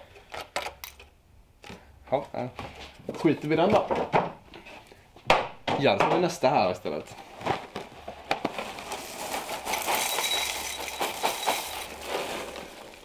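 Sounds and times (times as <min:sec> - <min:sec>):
cereal pouring into a bowl: 0:08.5 - 0:13.0.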